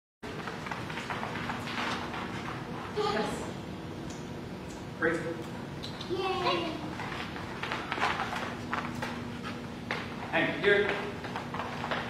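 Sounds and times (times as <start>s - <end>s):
low room hum: 0.2s - 12.0s
dog paws on rubber floor: 0.3s - 3.5s, 5.4s - 12.0s.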